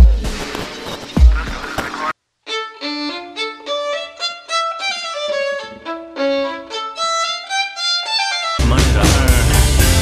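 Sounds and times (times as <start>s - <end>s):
violin melody: 2.4s - 9.6s.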